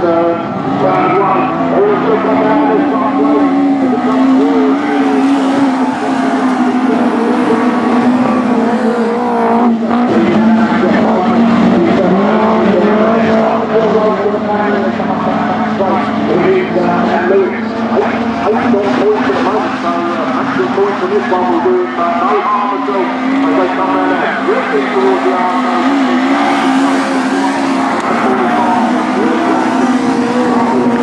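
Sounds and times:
racing car engines: 0.0s - 31.0s.

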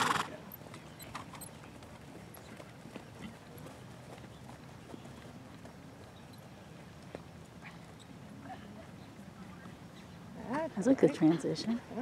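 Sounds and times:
hoofbeats on sand: 0.0s - 8.1s.

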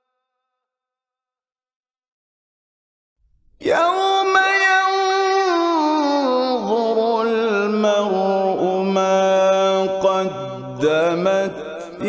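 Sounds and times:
man reciting melodically: 3.6s - 12.0s.

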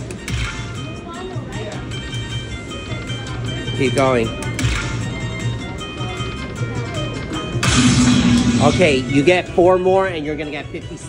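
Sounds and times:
slot machine electronic music: 7.4s - 9.9s
loud crashing sound effect: 7.6s - 9.6s.

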